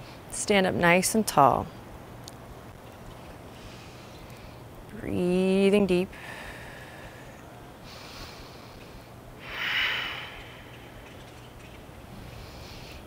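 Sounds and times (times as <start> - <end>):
person breathing through nose: 6.2 - 10.9, 12.2 - 13.0.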